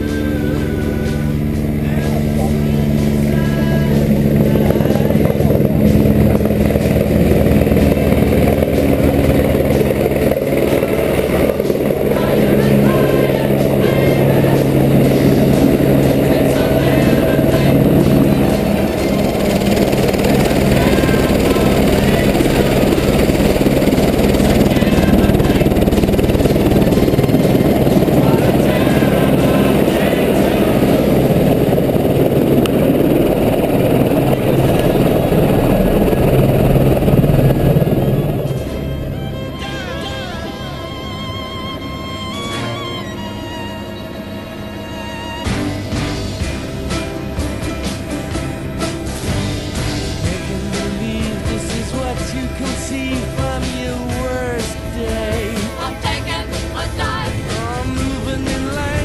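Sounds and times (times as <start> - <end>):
faint music: 0.0 - 59.0
helicopter rotor and engine: 0.0 - 59.0.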